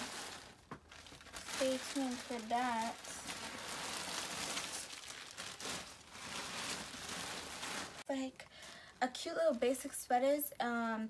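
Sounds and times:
plastic bags and clothing rustling: 0.0 - 10.1.

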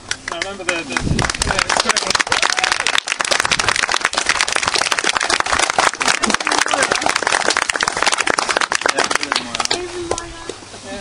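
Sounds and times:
crowd applauding: 0.0 - 10.2.

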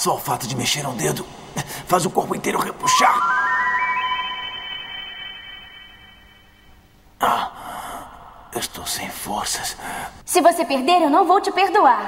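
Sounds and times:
rising run of higher tones: 2.8 - 6.6
bright electronic tone: 2.8 - 6.7.

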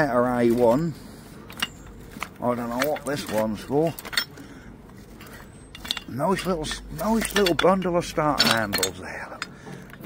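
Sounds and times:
metal handles clinking: 0.0 - 10.0.

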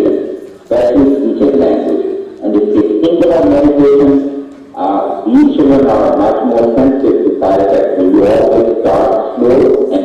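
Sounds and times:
man speaking over loudspeakers: 0.0 - 10.0.

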